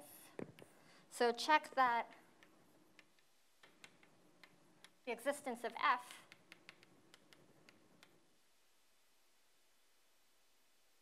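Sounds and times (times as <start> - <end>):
chalk ticking on blackboard: 2.0 - 8.2.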